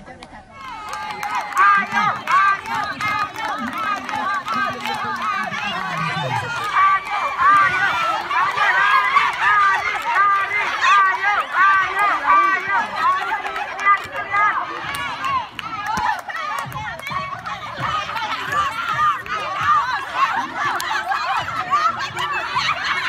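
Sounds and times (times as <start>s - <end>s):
women shouting over one another: 1.3s - 23.0s.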